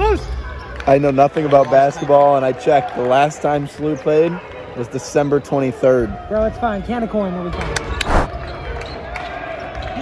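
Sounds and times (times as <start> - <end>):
microphone rush of noise: 8.0 - 8.3.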